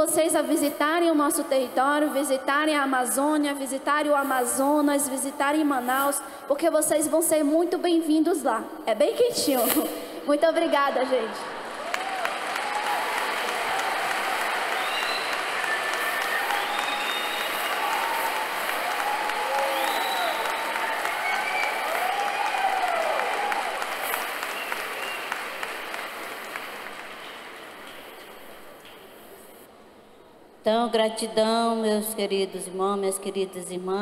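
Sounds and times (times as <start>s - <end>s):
large audience applauding: 11.6s - 28.8s
voices whooping and calling out: 11.8s - 24.2s.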